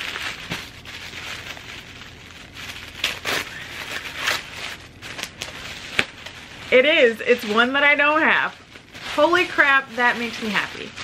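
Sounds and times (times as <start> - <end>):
tissue paper crinkling: 0.0 - 11.0.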